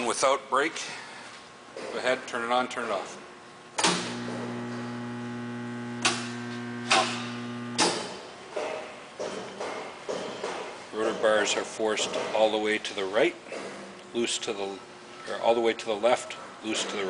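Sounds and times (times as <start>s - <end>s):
electric motor humming: 3.9s - 7.9s.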